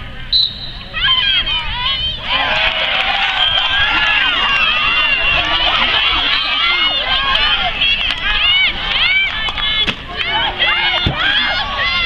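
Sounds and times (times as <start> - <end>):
crowd of high-pitched voices cheering: 0.0 - 12.0.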